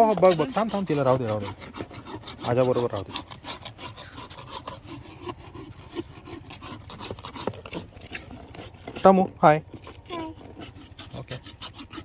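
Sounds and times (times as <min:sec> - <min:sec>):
rasp filing a hoof: 0:00.0 - 0:12.0.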